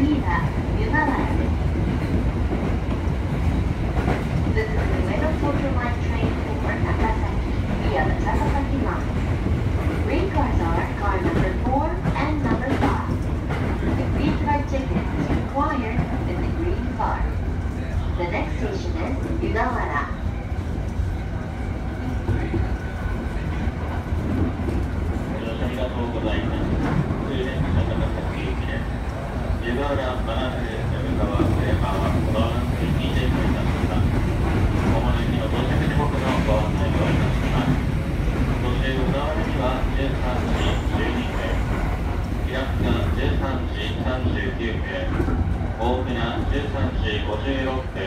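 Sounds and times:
train rumbling on rails: 0.0 - 48.0.

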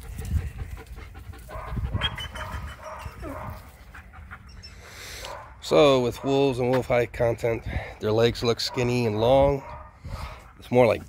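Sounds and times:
dog panting: 0.0 - 5.5.

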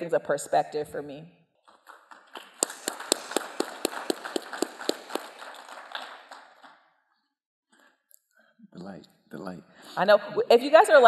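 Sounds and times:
audience applauding: 1.7 - 6.8
person clapping: 1.7 - 6.8.

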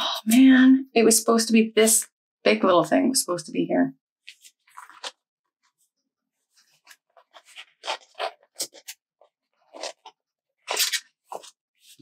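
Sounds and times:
paper rustling and crinkling: 4.3 - 12.0.

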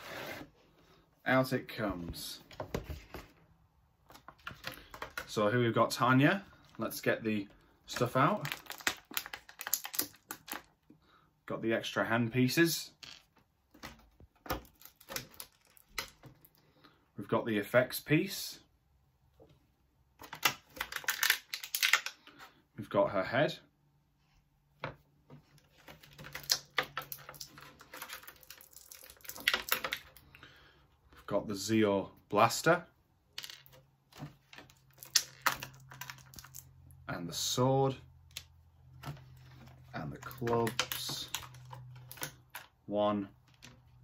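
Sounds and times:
plastic packaging clicks and crinkles: 4.1 - 5.4, 7.9 - 10.9, 13.8 - 16.6, 20.2 - 22.3, 25.5 - 30.4, 33.6 - 36.8, 38.3 - 42.8
thin plastic tray clicking and crackling: 8.4 - 10.7, 20.2 - 22.2, 26.0 - 30.2.

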